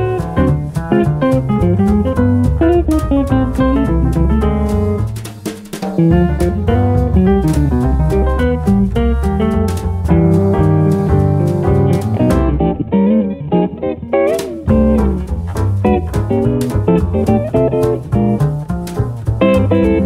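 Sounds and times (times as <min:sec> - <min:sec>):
jazz band playing swing: 0:00.0 - 0:20.0.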